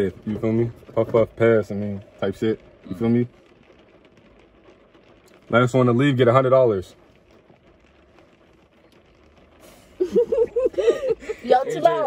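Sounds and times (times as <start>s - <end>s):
car heater hum: 0.0s - 12.0s.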